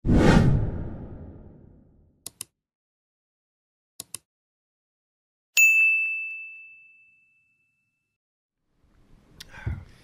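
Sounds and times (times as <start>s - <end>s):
whoosh: 0.0s - 2.0s.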